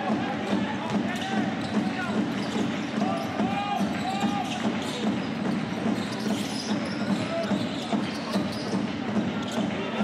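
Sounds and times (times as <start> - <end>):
sneaker squeaks: 0.8 - 10.0.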